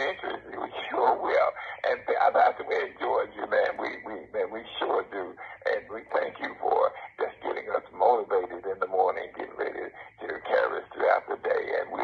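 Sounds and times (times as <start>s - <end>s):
person talking over phone line: 0.0s - 12.0s.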